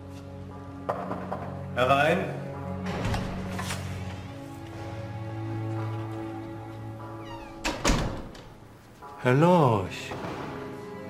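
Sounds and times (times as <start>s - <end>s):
background music: 0.0s - 11.0s
door squeaking: 7.0s - 8.6s
door knocking shut and latching: 7.3s - 8.6s.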